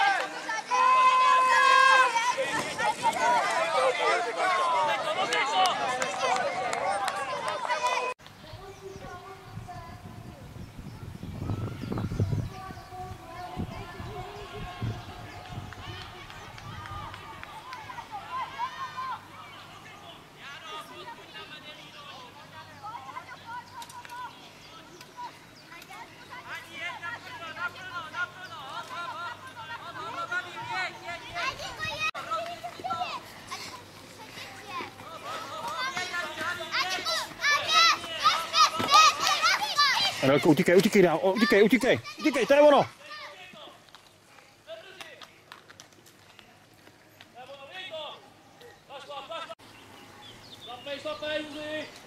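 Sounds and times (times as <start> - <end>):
distant spectators talking: 0.0 - 52.0.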